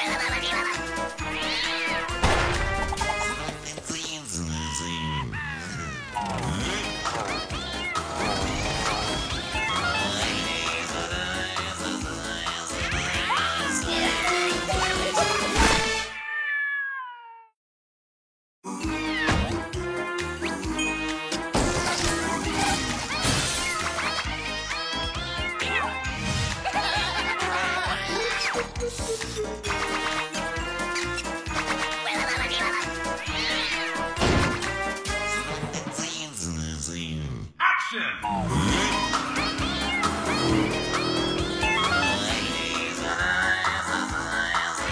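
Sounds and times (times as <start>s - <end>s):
cartoon cat meowing: 0.0s - 3.4s, 4.6s - 8.6s, 12.8s - 15.4s, 16.0s - 17.6s, 18.8s - 19.6s, 22.6s - 26.1s, 32.0s - 34.2s, 37.6s - 42.4s
upbeat cartoon music: 0.0s - 16.1s, 18.7s - 36.6s, 38.2s - 44.9s.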